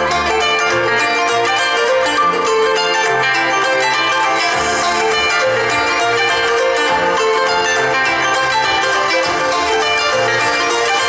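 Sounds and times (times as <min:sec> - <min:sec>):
harp playing: 0:00.0 - 0:11.0.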